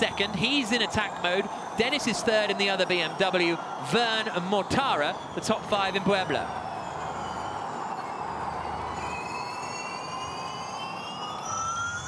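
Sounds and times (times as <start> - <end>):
electric race cars whining: 0.0 - 12.0.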